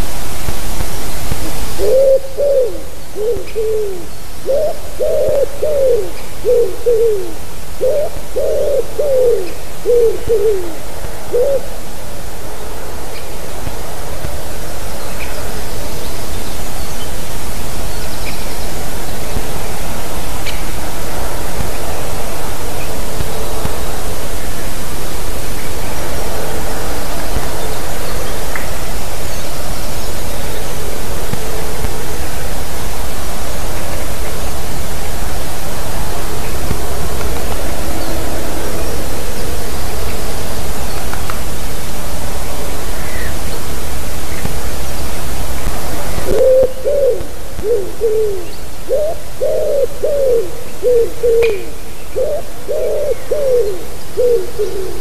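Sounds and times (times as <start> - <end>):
loud steady hiss: 0.0 - 55.0
pigeon cooing: 1.4 - 11.7, 46.2 - 55.0.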